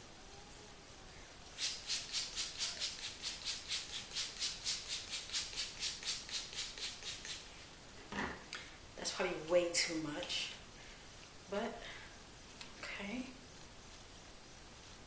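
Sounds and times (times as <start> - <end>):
spray bottle hissing sprays: 1.5 - 7.6.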